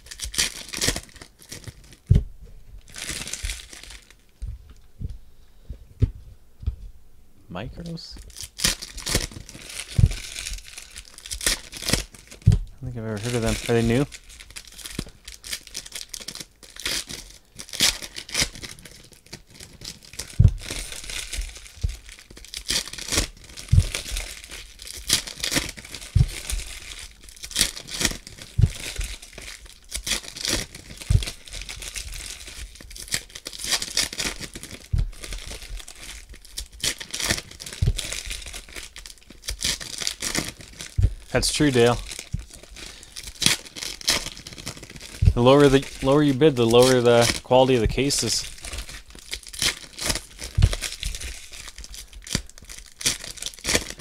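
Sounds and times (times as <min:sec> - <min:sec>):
foil wrappers crinkling and tearing: 0:00.0 - 0:02.1, 0:02.8 - 0:04.3, 0:08.1 - 0:54.0
soft thumps: 0:02.0 - 0:03.7, 0:04.4 - 0:07.1, 0:09.9 - 0:10.7, 0:12.4 - 0:12.8, 0:20.3 - 0:22.1, 0:23.7 - 0:24.2, 0:26.2 - 0:26.8, 0:28.6 - 0:29.1, 0:34.8 - 0:35.9, 0:37.7 - 0:38.4, 0:40.9 - 0:41.3, 0:45.1 - 0:45.5, 0:50.5 - 0:51.4.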